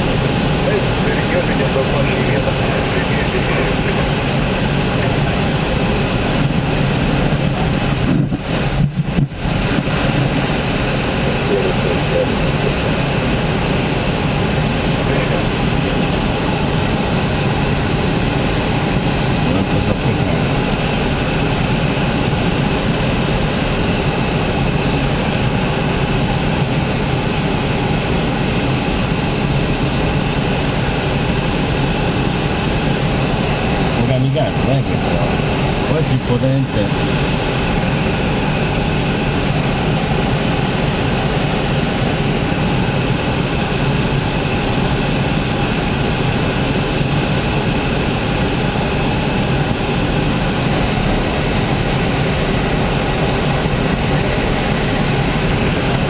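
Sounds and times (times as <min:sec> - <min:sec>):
plane engine drone: 0:00.0 - 0:56.0.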